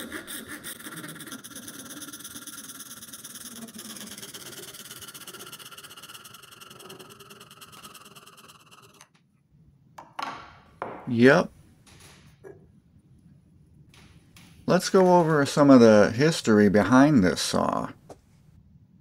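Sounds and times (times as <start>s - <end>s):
hacksaw sawing plastic pipe: 0.0s - 9.1s.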